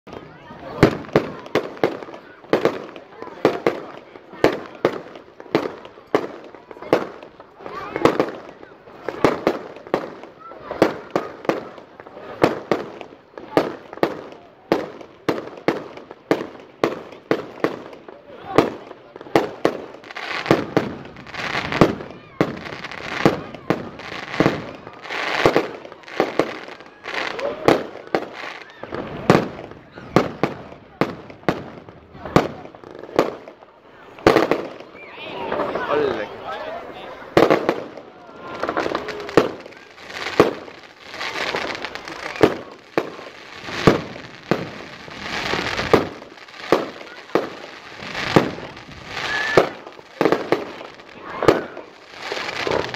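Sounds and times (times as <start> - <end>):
fireworks bursting: 0.1 - 52.9.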